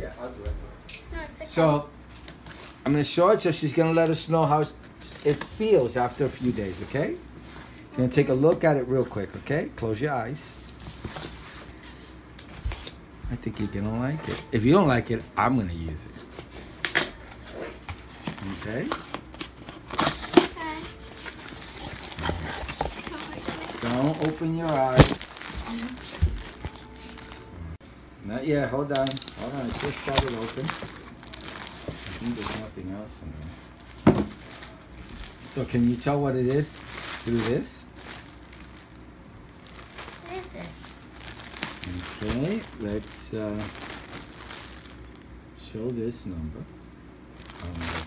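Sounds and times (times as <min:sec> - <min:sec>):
child's voice: 0:01.1 - 0:01.6, 0:20.4 - 0:21.2, 0:23.0 - 0:23.8, 0:40.2 - 0:40.8
plastic bag crinkling: 0:19.6 - 0:27.6, 0:29.0 - 0:32.8, 0:33.7 - 0:45.4, 0:47.3 - 0:48.0
child vocal sound: 0:23.0 - 0:23.8.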